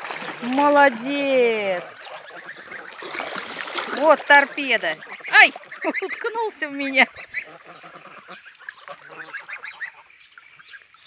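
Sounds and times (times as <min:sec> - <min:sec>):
young geese calling: 0:00.1 - 0:11.0.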